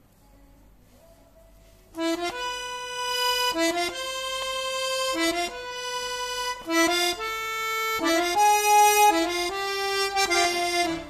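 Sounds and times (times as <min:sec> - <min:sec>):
accordion notes: 0:01.9 - 0:11.0.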